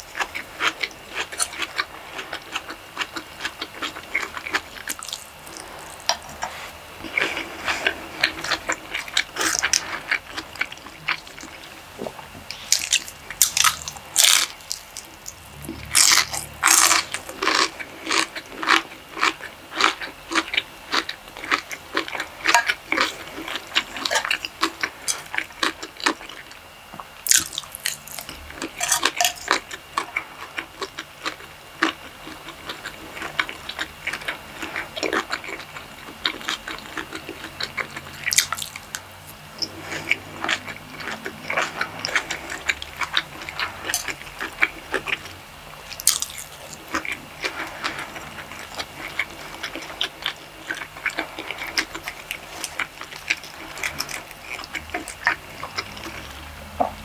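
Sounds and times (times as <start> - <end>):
wet chewing and lip smacks: 27.3 - 56.5.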